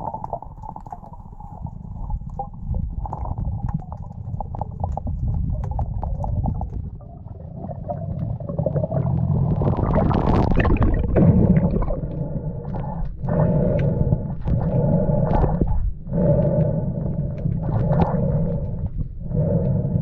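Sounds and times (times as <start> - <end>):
underwater rumble of moving water: 0.0 - 20.0.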